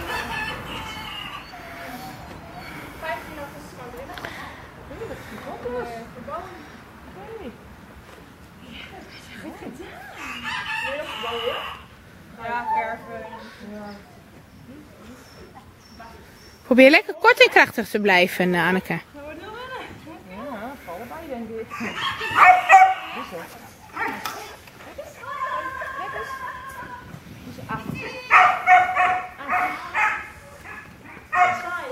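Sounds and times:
rooster crowing: 0:00.0 - 0:02.3, 0:10.1 - 0:11.9, 0:21.7 - 0:23.4
dog barking: 0:22.0 - 0:23.2, 0:28.3 - 0:31.9
dog's high drawn-out call: 0:22.0 - 0:23.3.

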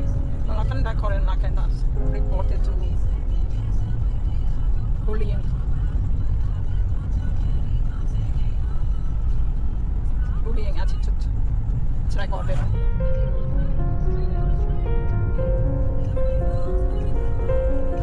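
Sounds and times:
car engine and tyres rumbling: 0:00.0 - 0:18.0.

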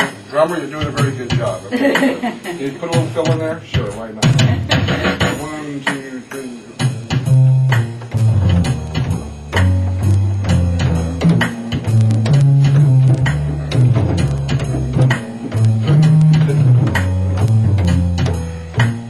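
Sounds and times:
automatic drum pattern: 0:00.0 - 0:19.0
organ playing swing: 0:00.0 - 0:19.0
bass line: 0:02.8 - 0:05.6, 0:06.8 - 0:19.0.

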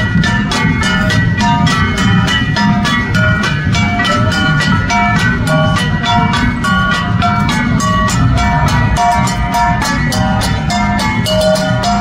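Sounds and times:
brass gongs beaten rhythmically: 0:00.0 - 0:12.0.

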